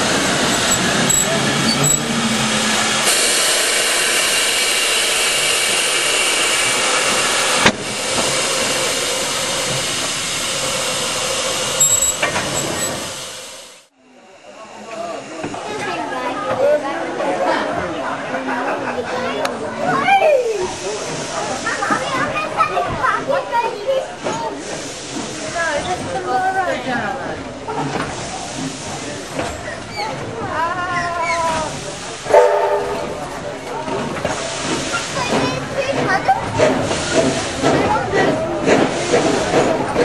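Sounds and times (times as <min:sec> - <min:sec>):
passenger chatter: 0:00.0 - 0:13.2, 0:13.9 - 0:40.0
steam locomotive hissing: 0:00.0 - 0:17.2, 0:19.9 - 0:40.0
train whistle chord: 0:32.3 - 0:33.0.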